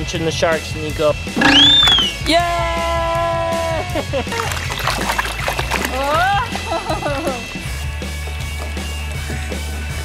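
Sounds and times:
water splashing in toy table: 1.4 - 2.2, 4.3 - 7.3.

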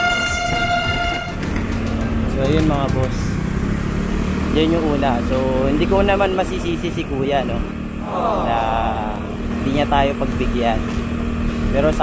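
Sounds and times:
high horn-like tone: 0.0 - 1.4
motorcycle engine and road noise: 0.0 - 12.0.

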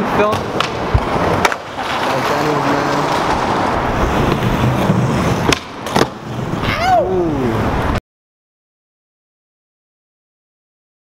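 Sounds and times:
skateboard clacks: 0.0 - 6.6
skateboard wheels rolling on concrete: 0.0 - 8.0
person calling out: 6.6 - 7.6.

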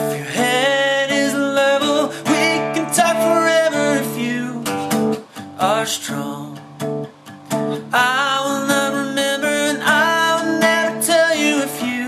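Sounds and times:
man singing: 0.0 - 6.8, 7.7 - 12.0
strummed acoustic guitar: 0.0 - 12.0.

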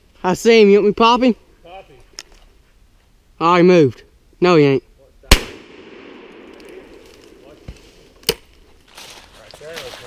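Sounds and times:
rifle crack: 5.3 - 7.6, 8.2 - 8.6.

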